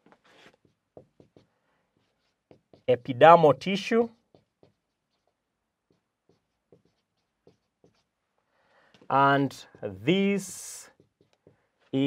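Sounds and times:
marker writing on whiteboard: 0:00.0 - 0:12.0.

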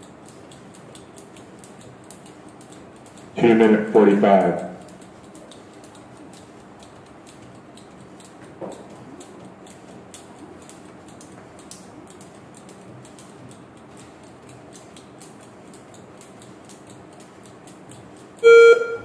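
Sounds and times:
jump rope ticking on floor: 0:00.0 - 0:18.4
electronic timer beep: 0:18.4 - 0:19.0.

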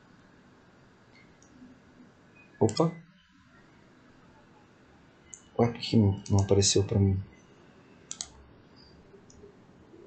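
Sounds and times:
mouse button clicks: 0:02.6 - 0:02.9, 0:08.1 - 0:08.3.

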